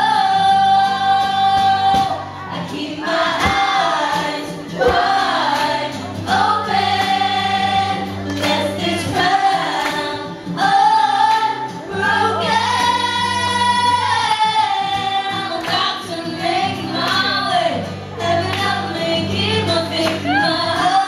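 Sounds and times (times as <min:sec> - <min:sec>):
acoustic guitar: 0:00.0 - 0:21.0
woman singing into microphone: 0:00.0 - 0:21.0.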